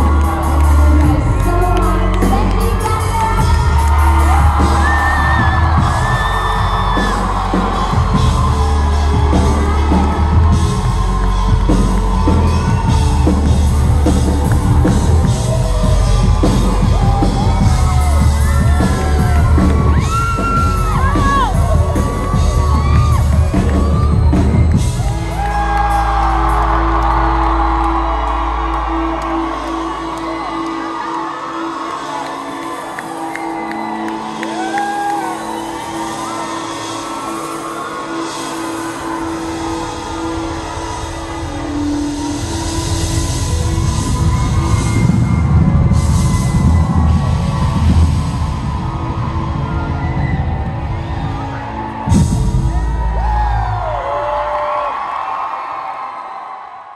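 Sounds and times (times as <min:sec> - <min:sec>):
audience cheering and whooping: 0:00.0 - 0:56.9.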